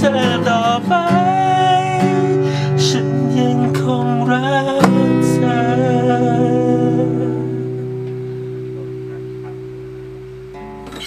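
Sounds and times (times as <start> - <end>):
acoustic guitar chord ringing: 0.0 - 11.0.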